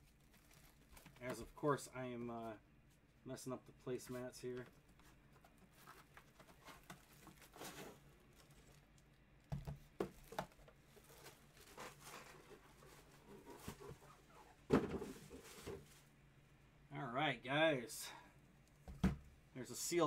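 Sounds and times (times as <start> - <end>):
cardboard and plastic rustling: 0.0 - 1.6, 4.0 - 16.2.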